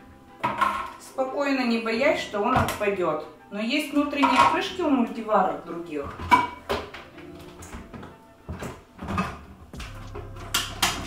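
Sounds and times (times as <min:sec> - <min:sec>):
knocks and clatters of parts: 0:06.2 - 0:11.0.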